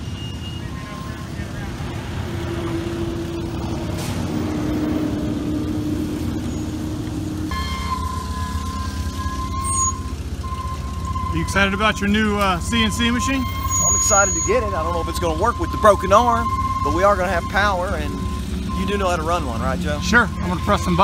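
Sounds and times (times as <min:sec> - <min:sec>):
forklift engine running: 0:00.0 - 0:21.0
high alarm tone: 0:07.5 - 0:21.0.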